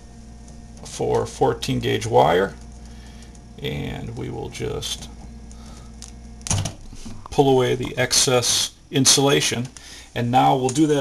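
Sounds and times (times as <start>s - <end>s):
low steady hum: 0.0s - 11.0s
wire strippers clicking: 6.0s - 8.0s.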